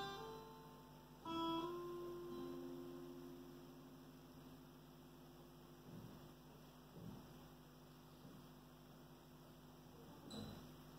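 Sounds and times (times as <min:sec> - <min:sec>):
acoustic guitar chord ringing: 0:00.0 - 0:07.8
faint electrical hum: 0:00.0 - 0:10.9.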